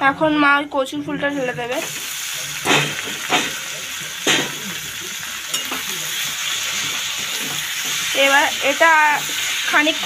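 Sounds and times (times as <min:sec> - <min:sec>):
vegetables sizzling in hot oil: 0:01.3 - 0:10.0.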